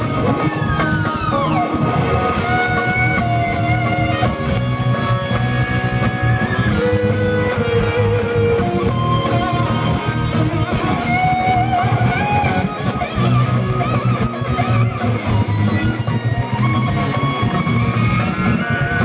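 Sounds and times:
bass: 0.0s - 19.0s
drums: 0.0s - 19.0s
lead electric guitar with vibrato: 0.0s - 19.0s
second electric guitar: 0.0s - 19.0s.

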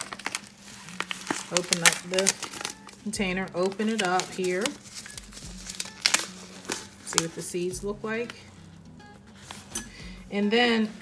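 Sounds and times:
plastic pouch crinkling: 0.0s - 8.5s.

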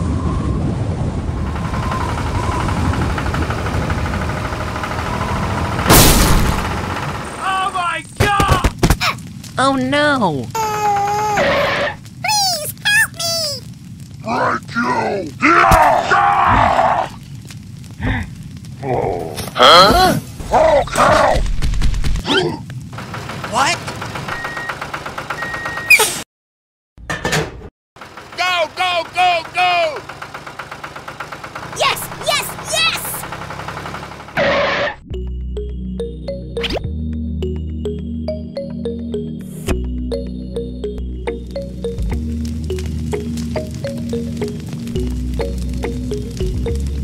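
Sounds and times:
tractor engine chugging: 1.6s - 7.4s, 23.0s - 25.9s, 28.0s - 34.4s
loud sudden bang: 5.9s - 6.7s
tractor engine ticking: 28.0s - 34.4s.

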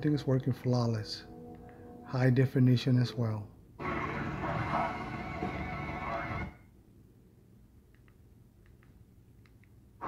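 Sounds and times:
film soundtrack from television: 0.0s - 6.8s.

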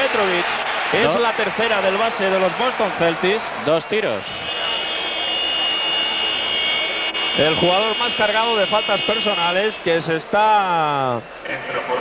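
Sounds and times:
basketball arena background noise: 0.0s - 12.0s
steady high-pitched tone: 3.8s - 10.0s.

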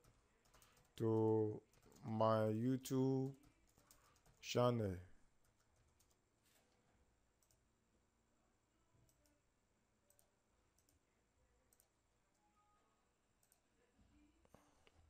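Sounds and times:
keyboard and mouse clicks: 0.0s - 2.1s, 3.2s - 4.4s.

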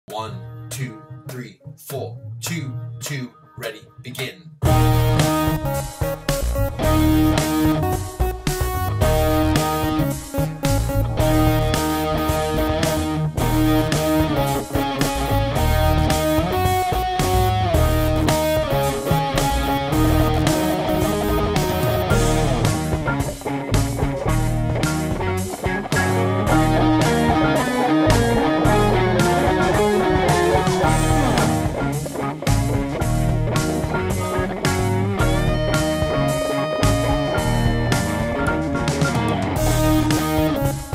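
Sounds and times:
guitar playing over a beat: 4.6s - 40.9s.

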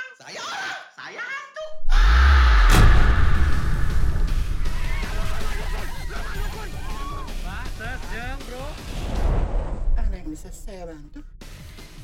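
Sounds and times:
deep low rumble: 1.8s - 11.4s.

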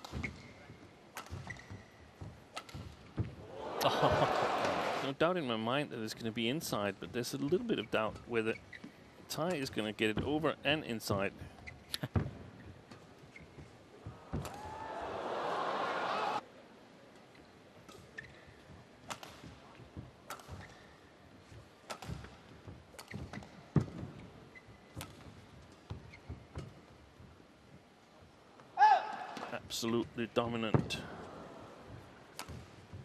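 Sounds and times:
rackets hitting shuttlecock: 1.1s - 3.0s, 14.3s - 14.7s, 20.3s - 20.9s, 21.8s - 24.0s, 24.9s - 25.4s, 32.3s - 32.8s
crowd shouting and cheering: 3.4s - 5.1s, 14.1s - 16.4s.

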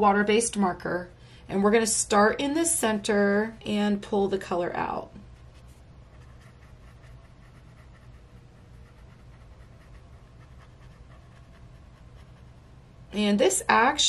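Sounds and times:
steady low hum: 0.0s - 14.0s
brush marker rubbing on paper: 5.4s - 12.6s.

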